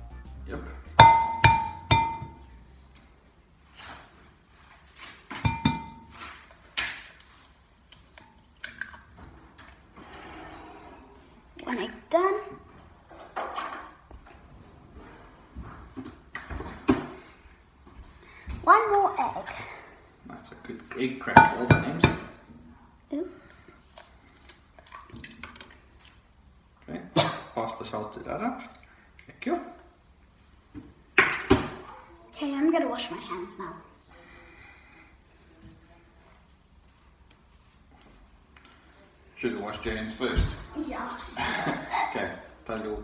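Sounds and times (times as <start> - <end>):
glass ringing: 0.9 - 2.6, 5.5 - 6.1.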